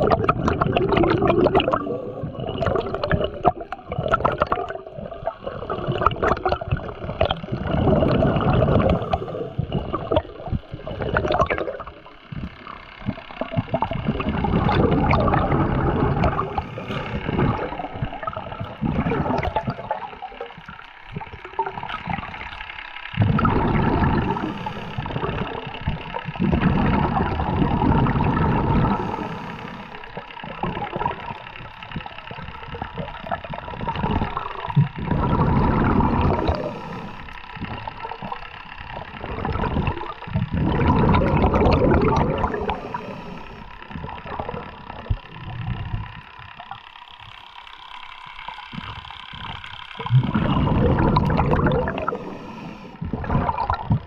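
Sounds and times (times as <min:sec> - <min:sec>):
underwater rushing hiss: 0:07.5 - 0:20.5, 0:23.2 - 0:46.2, 0:48.7 - 0:54.0.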